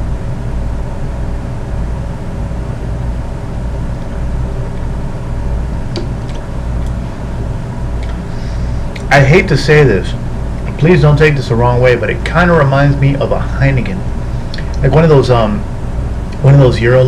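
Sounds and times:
air conditioning unit humming: 0.0s - 17.0s.

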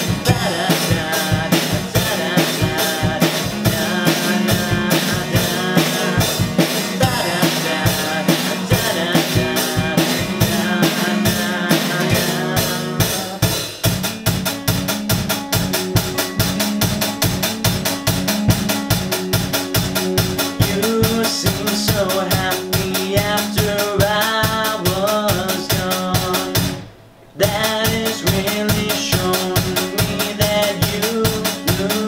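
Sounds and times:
man singing lead vocal: 0.0s - 13.9s, 20.5s - 32.0s
drum kit beat: 0.0s - 32.0s
strummed acoustic guitar: 0.0s - 32.0s.

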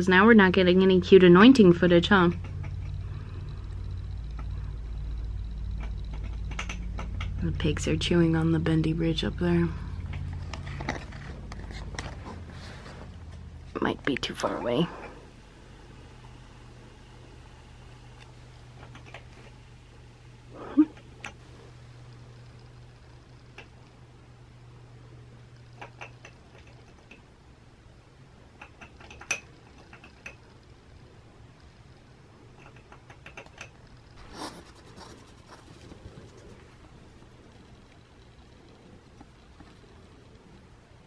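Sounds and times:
guinea pigs gnawing wood: 0.1s - 20.2s, 21.0s - 24.2s, 25.4s - 27.4s, 28.4s - 41.0s
guinea pigs clicking in cage: 4.0s - 7.7s, 18.8s - 19.3s, 25.7s - 27.3s, 28.5s - 30.6s, 32.5s - 40.4s.

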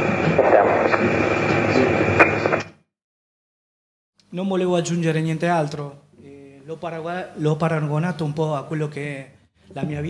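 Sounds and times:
radio background noise: 0.0s - 2.8s
thin high whine: 0.0s - 2.8s.

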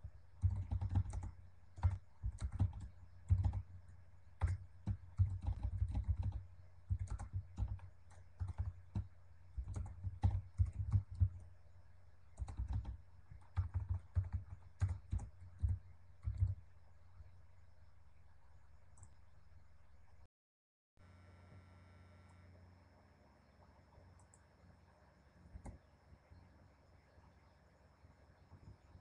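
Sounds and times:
typing on computer keyboard: 0.4s - 3.8s, 4.4s - 11.5s, 12.3s - 16.6s.

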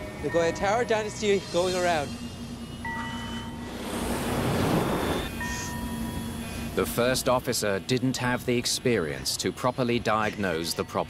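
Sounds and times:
steady high tone: 0.0s - 8.0s
jet airliner whoosh: 3.6s - 5.4s.

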